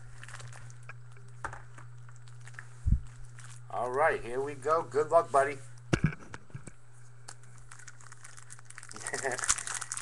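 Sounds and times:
wrapper crinkling as torn open: 0.0s - 1.2s, 1.9s - 4.0s, 7.2s - 10.0s.

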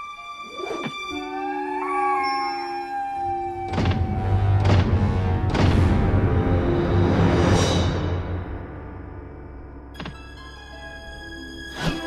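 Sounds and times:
wolves howling: 0.5s - 5.1s.

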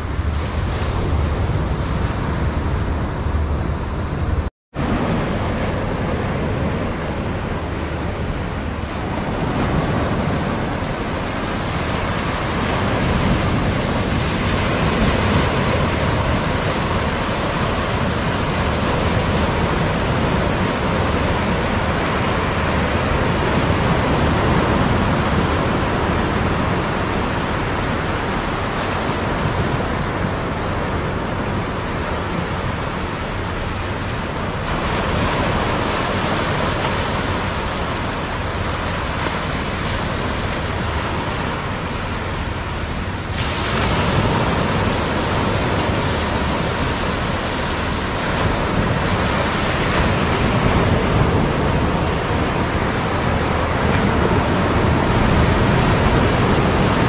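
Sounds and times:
surf breaking on beach: 0.0s - 57.0s.

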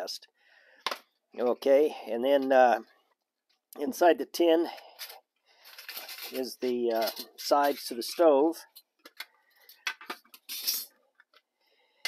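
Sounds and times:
thin metal scraping: 5.0s - 8.3s, 10.3s - 11.0s.

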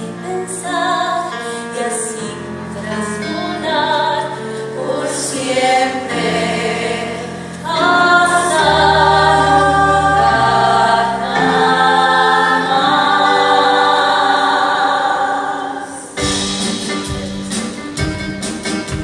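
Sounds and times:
ensemble singing choral chords: 0.0s - 16.8s
backing music: 2.5s - 19.0s.

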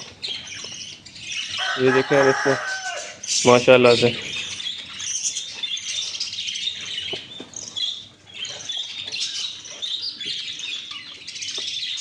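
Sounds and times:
budgerigars chattering and chirping: 0.0s - 12.0s.

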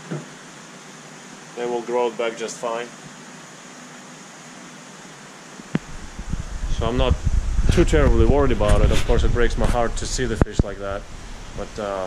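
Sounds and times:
aquarium water and pumps hissing: 0.0s - 12.0s.

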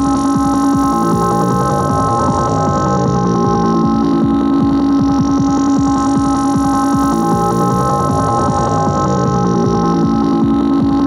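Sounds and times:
electronic percussion: 0.0s - 11.0s.

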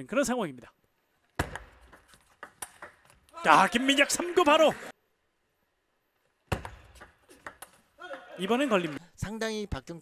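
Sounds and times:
table tennis ball clicks: 1.4s - 3.4s.

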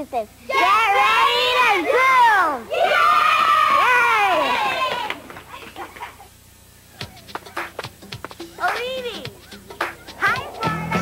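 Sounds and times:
children's voices: 0.0s - 6.3s, 8.6s - 11.0s
children's tv theme music: 6.9s - 11.0s.

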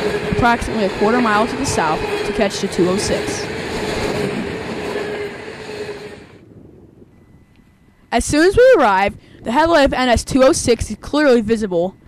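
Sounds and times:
freight train passing: 0.0s - 6.5s
faint steady high tone: 7.0s - 12.0s.

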